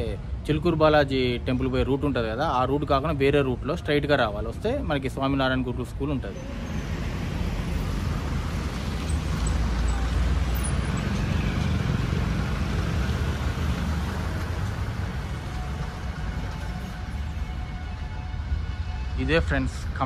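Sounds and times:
man talking: 19.2s - 20.0s.

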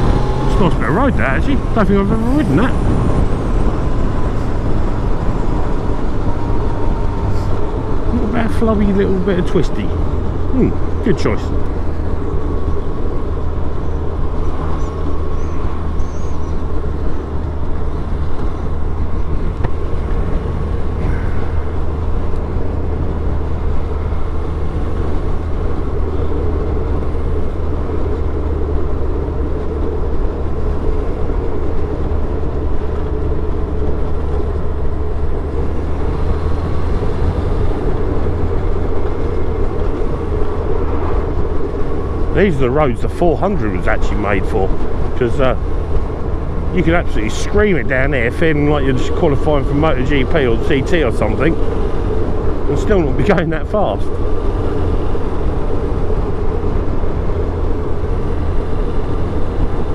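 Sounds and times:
wind rush: 0.0s - 8.5s
motorcycle engine cruising: 0.0s - 59.9s.

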